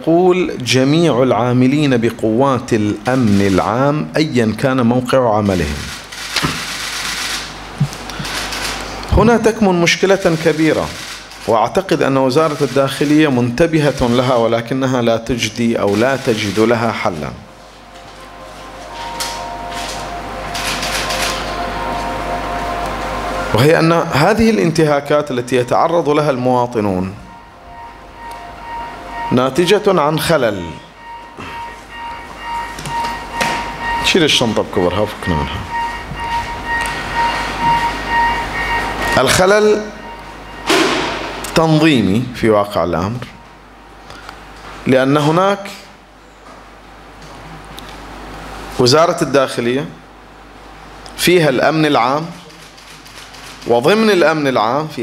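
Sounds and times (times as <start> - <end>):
sound system low hum: 0.0 - 55.0
thin steady whine: 0.0 - 55.0.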